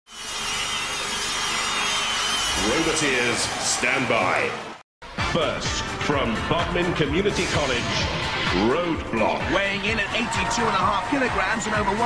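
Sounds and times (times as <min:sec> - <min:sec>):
grinding whirring power saw: 0:00.1 - 0:03.2.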